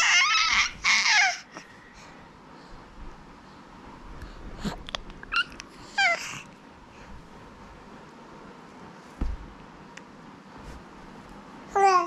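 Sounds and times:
baby squealing: 0:00.0 - 0:01.5, 0:05.3 - 0:06.3.

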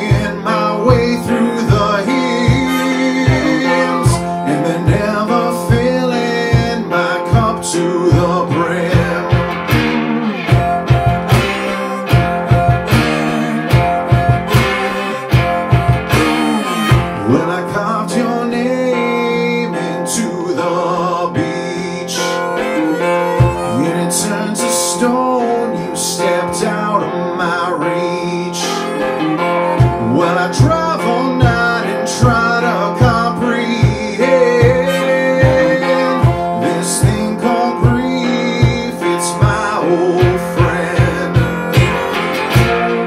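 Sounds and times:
plucked guitar bent notes: 0:00.0 - 0:43.0
low percussive beat: 0:00.1 - 0:05.1, 0:09.0 - 0:17.3, 0:40.2 - 0:43.0.

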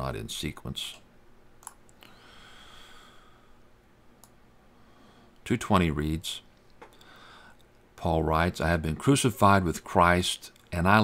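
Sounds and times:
faint sharp clicks: 0:04.2 - 0:04.4.

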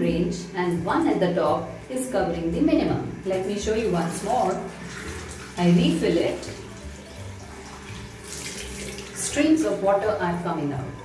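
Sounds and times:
water running into bottle and basin: 0:02.8 - 0:10.4.

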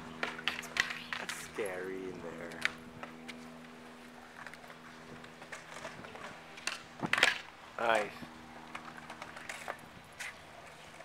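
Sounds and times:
steady low hum: 0:00.0 - 0:11.0
skateboard clattering on concrete: 0:00.2 - 0:01.8, 0:04.3 - 0:07.5.

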